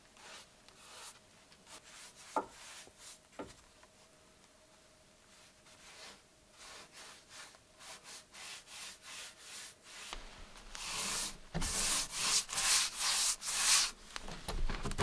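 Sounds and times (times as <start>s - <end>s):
paintbrush rubbing on wood: 0.2s - 3.2s, 5.3s - 14.0s.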